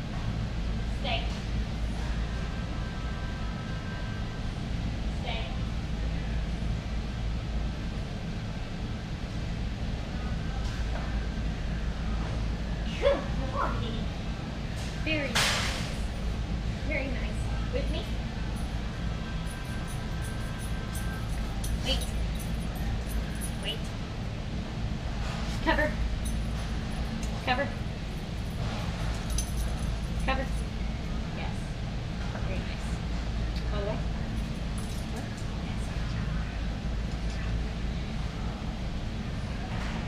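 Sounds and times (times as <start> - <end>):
low background hum: 0.0 - 40.0
store background rumble: 0.0 - 40.0.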